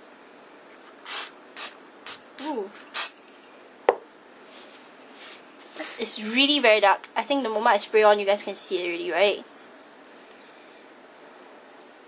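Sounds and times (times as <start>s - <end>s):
aerosol can spraying: 0.8s - 3.2s.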